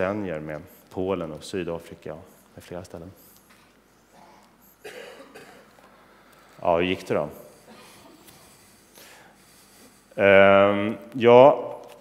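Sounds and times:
person coughing: 4.1s - 5.8s.

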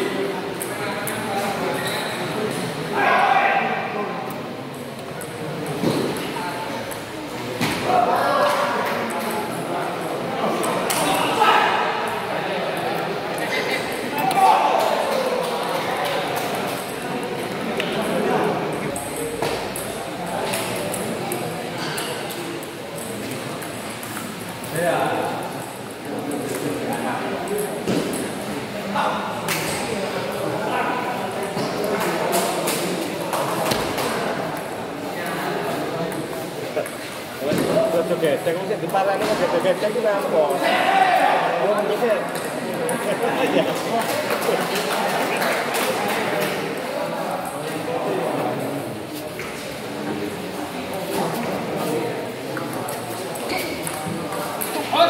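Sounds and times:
murmur of voices in echoing hall: 0.0s - 55.0s
table tennis balls clicking: 52.6s - 54.9s.

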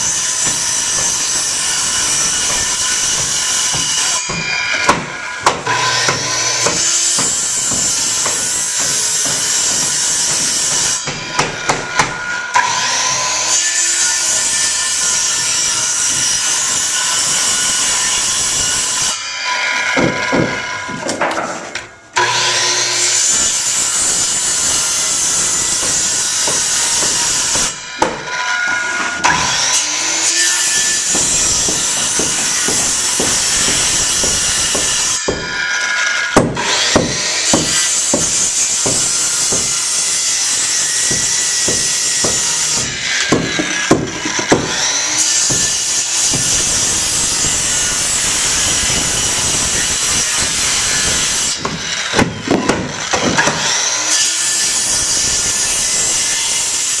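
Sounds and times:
circular saw cutting wood: 0.0s - 57.0s.

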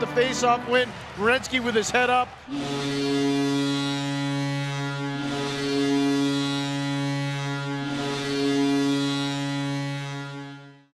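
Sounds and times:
crowd noise: 0.0s - 6.2s
goal horn blasts: 2.5s - 10.9s.

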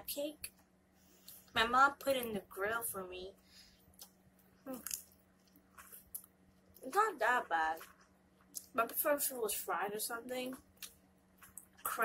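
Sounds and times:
faint chewing: 3.8s - 9.0s, 10.4s - 12.0s.

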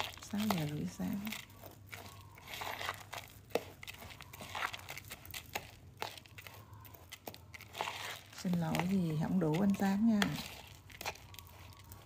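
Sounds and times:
plastic glove crinkling: 0.0s - 12.0s
spoon scraping rice in plastic bowl: 0.0s - 12.0s.

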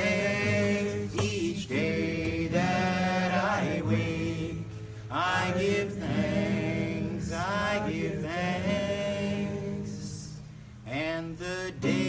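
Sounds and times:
voices singing a slow chant: 0.0s - 12.0s.

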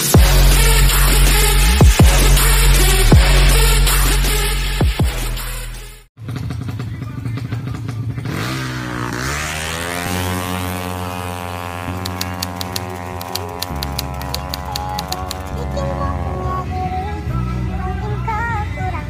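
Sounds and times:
motorcycle engine revving: 0.0s - 17.6s.

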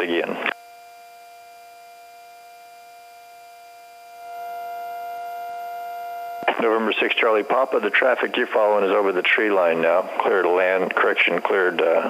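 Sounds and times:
electrical hum in headset: 0.0s - 12.0s.

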